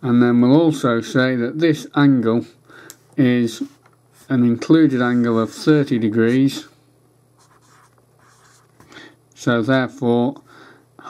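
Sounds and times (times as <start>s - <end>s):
low steady hum: 0.0s - 11.0s
marker pen scratching on paper: 7.4s - 8.8s.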